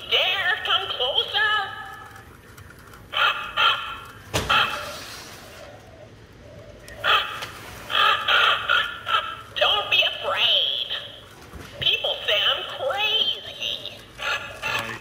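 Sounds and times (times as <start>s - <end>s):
toy raven speaking through speaker: 0.0s - 2.1s, 8.6s - 11.2s, 11.8s - 15.0s.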